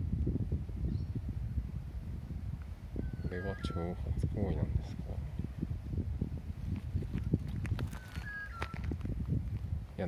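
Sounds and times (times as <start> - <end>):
bird whistled call: 3.0 - 4.0, 7.9 - 8.9.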